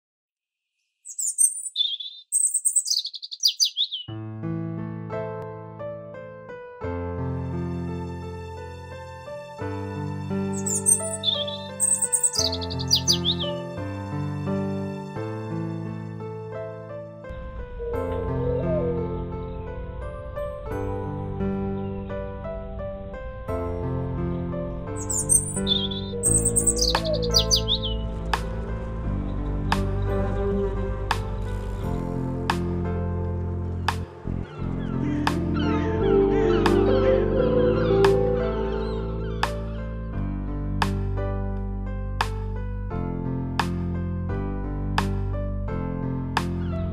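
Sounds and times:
high bird chirping: 1.1s - 4.1s, 10.5s - 13.6s, 25.0s - 28.1s
songbird singing trills: 1.1s - 4.1s, 10.6s - 13.5s, 25.0s - 28.1s
sustained background music: 1.1s - 46.9s.

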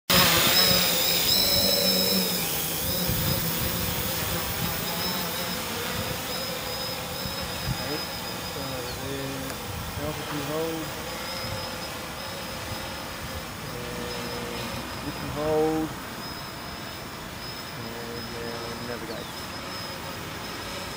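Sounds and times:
drone propellers whining: 0.1s - 20.9s.

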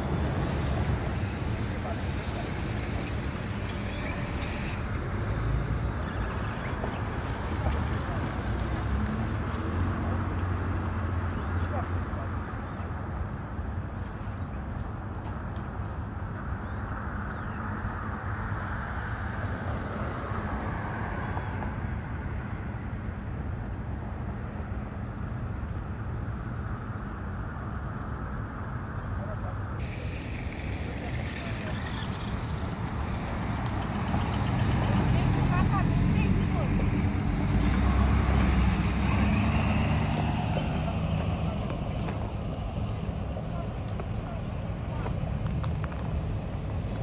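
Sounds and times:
traffic noise: 0.0s - 47.0s
vehicle engine running nearby: 0.0s - 47.0s.

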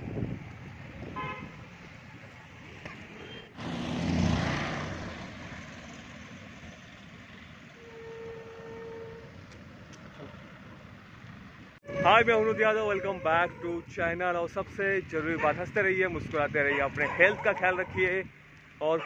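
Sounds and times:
street traffic noise: 0.0s - 19.0s
vehicle passing: 0.9s - 7.8s
vehicle horn toot: 1.1s - 1.5s, 7.8s - 9.3s, 11.8s - 13.6s.

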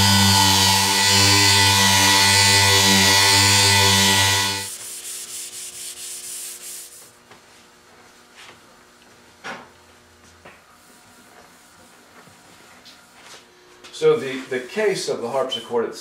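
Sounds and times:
electric sander buffing: 0.0s - 6.4s.

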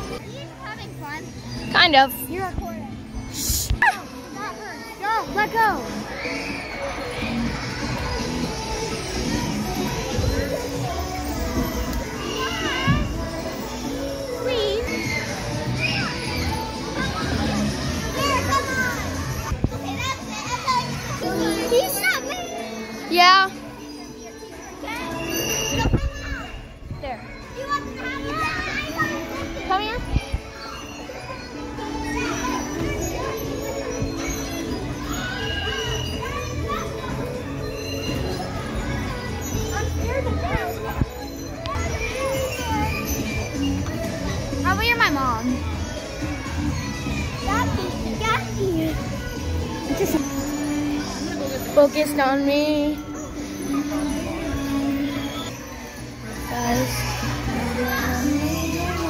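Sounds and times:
children shouting: 3.8s - 26.8s, 27.4s - 51.8s, 52.9s - 59.0s.

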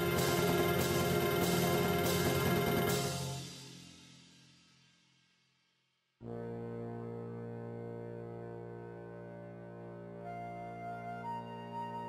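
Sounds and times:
sustained brass chord: 0.0s - 3.8s, 6.2s - 12.0s
marching band chord: 0.0s - 4.0s.

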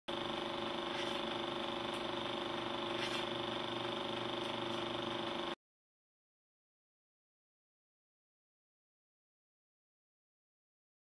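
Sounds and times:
steady machine hum: 0.1s - 5.6s.

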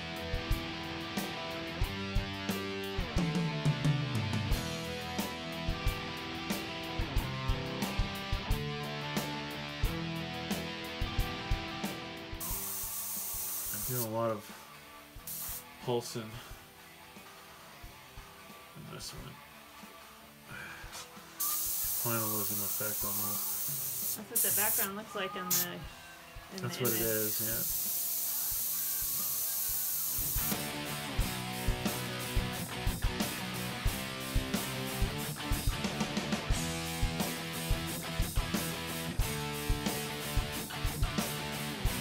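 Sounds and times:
guitar background music: 0.0s - 42.0s
airbrush hissing: 12.4s - 14.2s, 15.2s - 15.7s, 21.3s - 25.8s, 26.7s - 31.0s.

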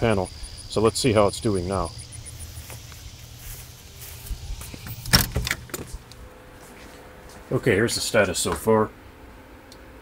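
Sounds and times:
faint rapid insect chirping: 0.0s - 6.1s.

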